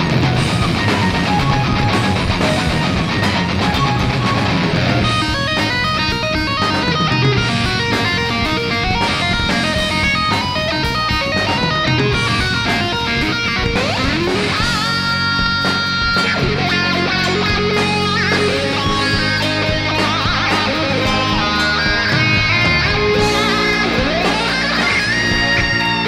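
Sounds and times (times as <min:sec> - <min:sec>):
distorted electric guitar lead: 0:00.0 - 0:26.0
metal band playing live: 0:00.0 - 0:26.0.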